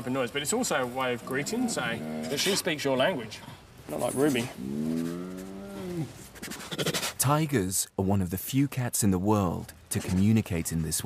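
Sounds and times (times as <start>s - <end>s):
tiger calling: 1.1s - 2.8s, 4.1s - 7.2s.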